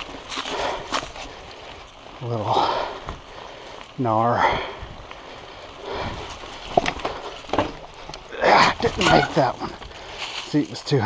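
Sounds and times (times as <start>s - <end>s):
hard breathing: 0.0s - 8.8s, 9.4s - 10.4s.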